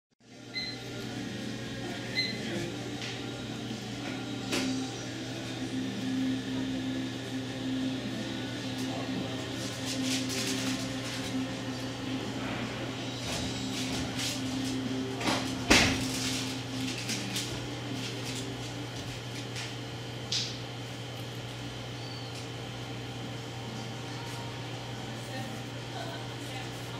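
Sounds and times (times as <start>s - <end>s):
low electrical hum: 0.2s - 26.9s.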